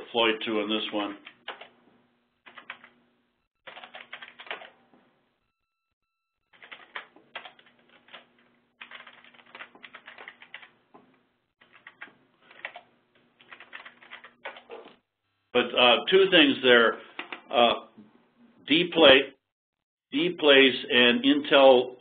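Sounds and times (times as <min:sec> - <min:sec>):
typing on computer keyboard: 0:01.2 - 0:01.7, 0:02.5 - 0:02.9, 0:03.7 - 0:04.7, 0:06.6 - 0:10.7, 0:11.6 - 0:14.8.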